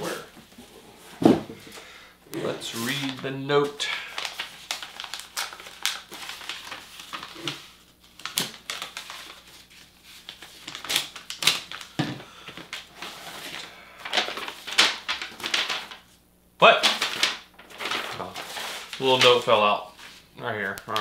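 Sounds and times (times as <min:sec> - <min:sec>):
paper rustling and crinkling: 0:02.4 - 0:16.2, 0:16.8 - 0:21.0.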